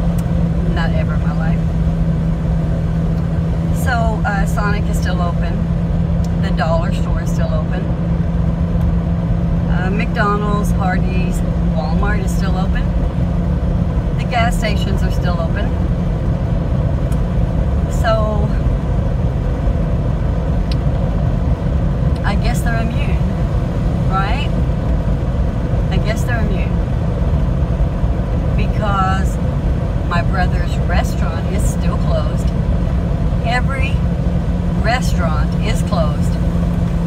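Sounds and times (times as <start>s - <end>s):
car driving rumble inside cabin: 0.0s - 37.0s.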